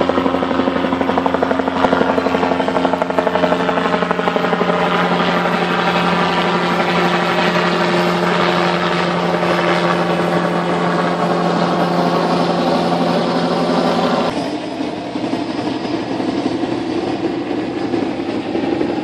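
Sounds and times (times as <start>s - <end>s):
car engines humming: 0.0s - 19.0s
helicopter rotor flutter: 0.0s - 19.0s.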